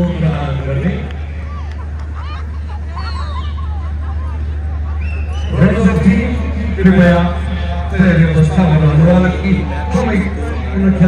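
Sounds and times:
steady low hum: 0.0s - 11.0s
women talking and calling out: 1.5s - 5.1s.

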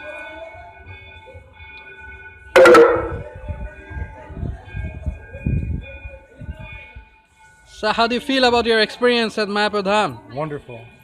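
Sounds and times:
faint steady musical tones: 0.0s - 11.0s
loud metallic clang: 2.6s - 3.3s.

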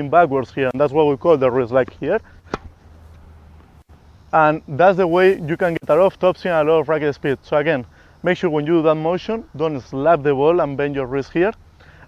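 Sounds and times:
low outdoor background rumble: 0.0s - 12.0s
tennis ball impact: 1.8s - 3.7s.

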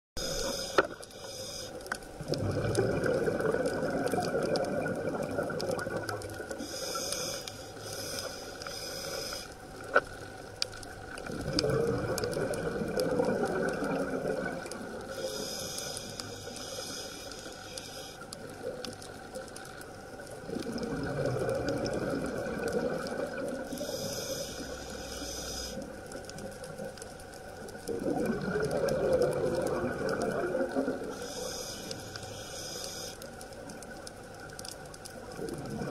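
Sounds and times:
regulator hissing inhale: 0.2s - 2.0s, 6.6s - 9.6s, 15.0s - 18.4s, 23.7s - 26.1s, 31.0s - 33.4s
rumbling exhaled bubbles: 2.2s - 6.6s, 11.1s - 15.1s, 20.2s - 23.8s, 27.6s - 31.2s, 35.1s - 35.9s.

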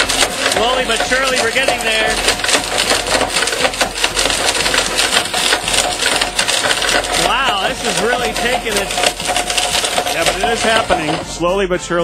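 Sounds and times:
blender motor whine: 0.0s - 11.5s
golf balls rattling in blender jar: 0.0s - 11.5s.

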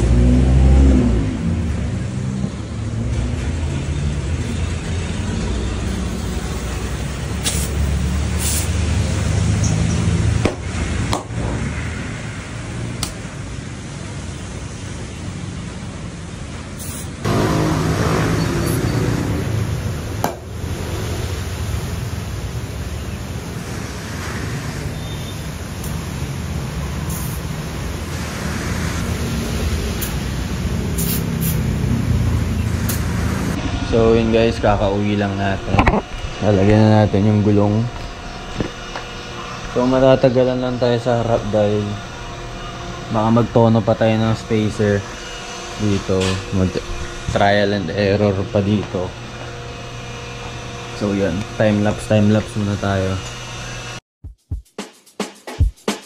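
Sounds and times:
air hissing from hose: 5.9s - 9.2s, 16.8s - 19.6s, 20.7s - 33.6s
air compressor humming: 16.8s - 54.0s.

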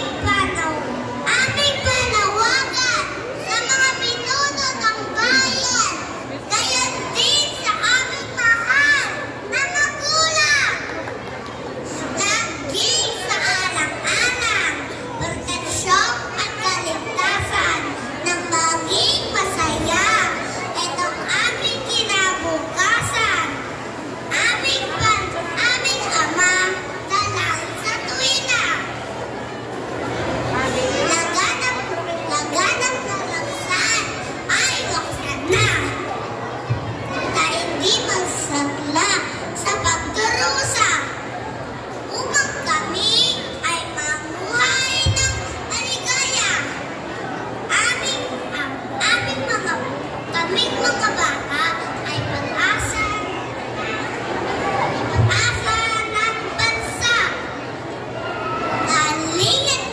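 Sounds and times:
boy speaking over pa system: 0.0s - 10.8s, 11.8s - 29.0s, 30.5s - 41.3s, 42.1s - 57.6s, 58.8s - 59.9s.

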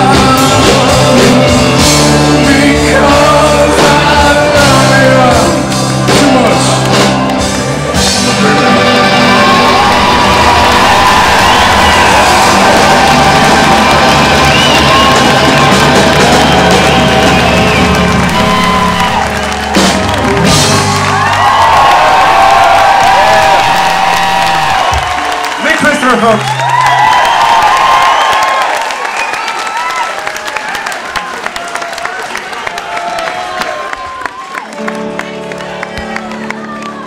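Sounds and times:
rock band holding chord: 0.0s - 26.8s
crowd cheering and whooping: 6.1s - 37.0s.

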